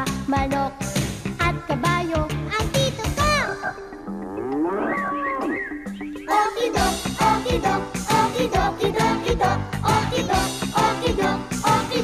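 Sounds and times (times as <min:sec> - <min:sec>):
theme music with held notes: 0:00.0 - 0:12.0
cow mooing: 0:04.1 - 0:05.6.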